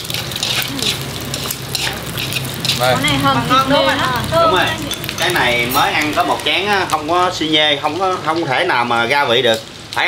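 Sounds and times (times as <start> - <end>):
chopsticks stirring in a wok: 0.0 - 9.5
food sizzling in a wok: 0.0 - 10.0.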